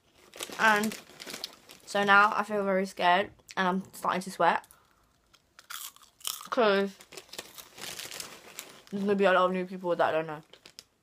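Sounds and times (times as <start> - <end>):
person chewing crunchy snack: 5.2 - 8.4.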